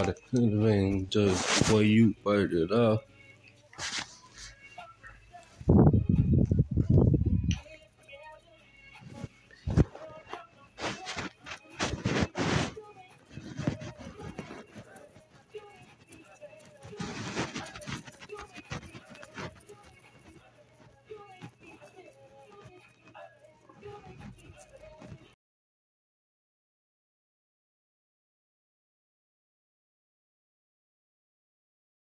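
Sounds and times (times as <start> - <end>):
muffled voice: 0.0 - 3.1, 9.1 - 25.4.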